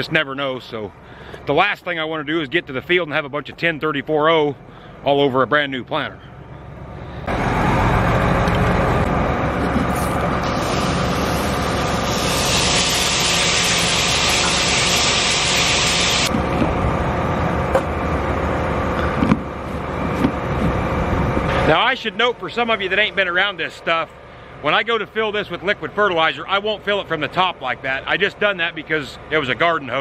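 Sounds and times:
hose water splashing into tank: 0:10.5 - 0:16.3.

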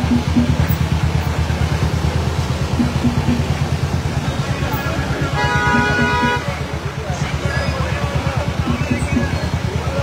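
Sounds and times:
motorcycle engines running slowly: 0:00.0 - 0:10.0.

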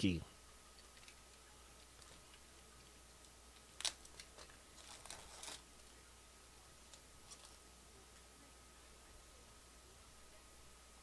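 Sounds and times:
foil pack crackling: 0:03.8 - 0:05.6.

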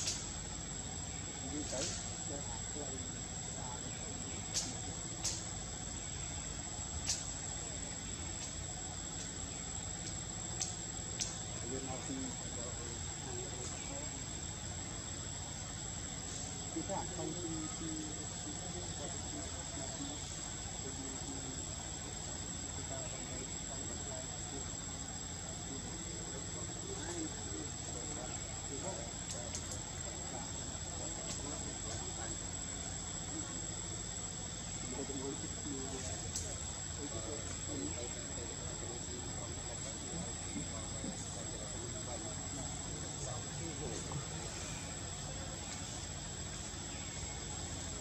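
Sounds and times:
faint distant voices: 0:00.0 - 0:48.0
insects droning: 0:00.0 - 0:48.0.

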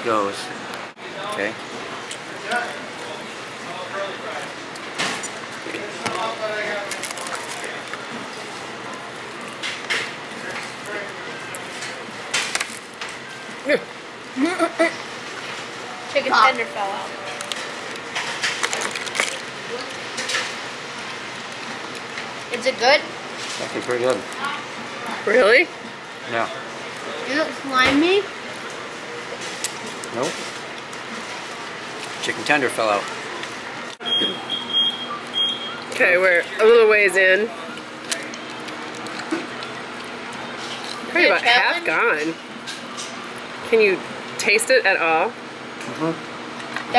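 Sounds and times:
dining room background noise: 0:00.0 - 0:46.9
restaurant background noise: 0:00.0 - 0:46.9.

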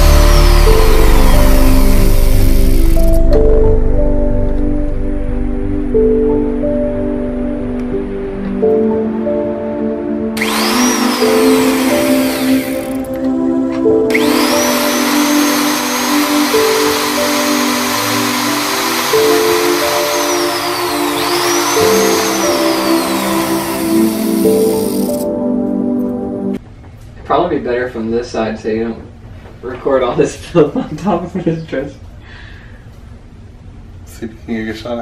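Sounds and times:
power drill boring into wood: 0:00.0 - 0:03.2, 0:10.4 - 0:13.1, 0:14.1 - 0:25.3
background music: 0:00.0 - 0:26.6.

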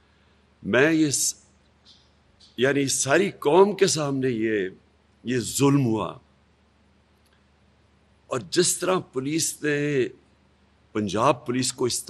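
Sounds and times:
man speaking: 0:00.6 - 0:01.4, 0:02.6 - 0:06.2, 0:08.3 - 0:10.2, 0:11.0 - 0:12.0.

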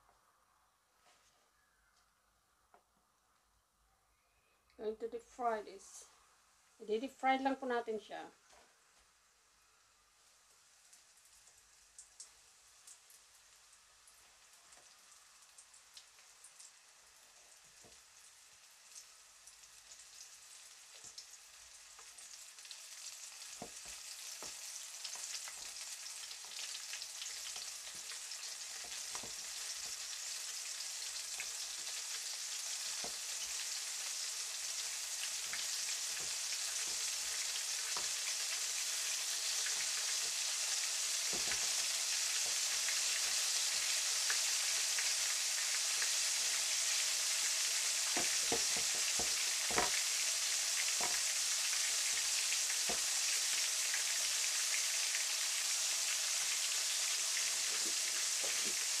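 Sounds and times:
oil sizzling in a wok: 0:04.8 - 0:59.0.

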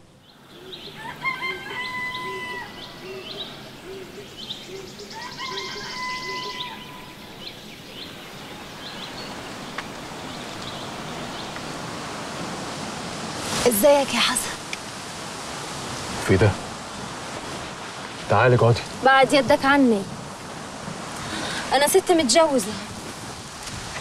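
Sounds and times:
small birds chirping: 0:00.0 - 0:12.1
rooster crowing: 0:00.6 - 0:04.2, 0:05.0 - 0:07.3
steady hiss: 0:02.0 - 0:24.0.

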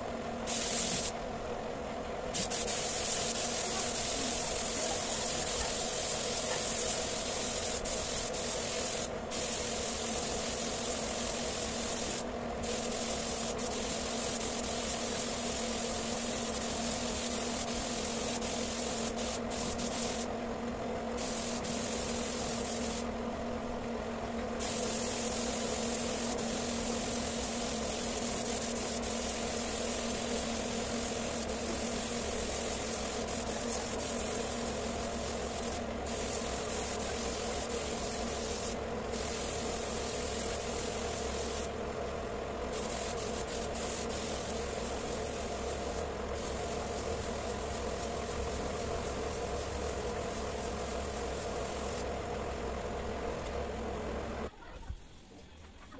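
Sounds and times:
steady hum: 0:00.0 - 0:55.9
spray gun hissing: 0:00.5 - 0:01.2, 0:02.3 - 0:20.3, 0:21.2 - 0:23.1, 0:24.6 - 0:41.7, 0:42.7 - 0:52.1.

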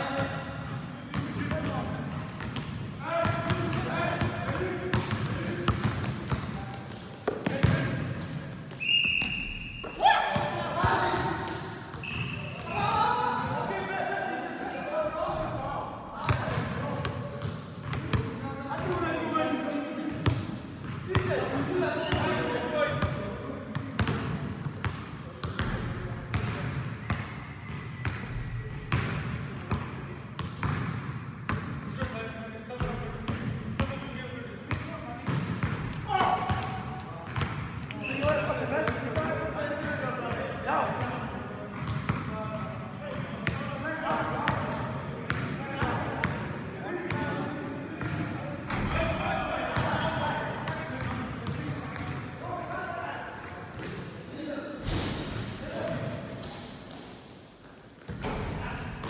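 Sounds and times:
basketballs bouncing on gym floor: 0:01.1 - 0:13.6, 0:16.2 - 0:19.1, 0:20.1 - 0:21.4, 0:22.9 - 0:40.4, 0:41.0 - 0:43.7, 0:44.4 - 0:46.5, 0:48.0 - 0:49.0, 0:50.7 - 0:52.3.

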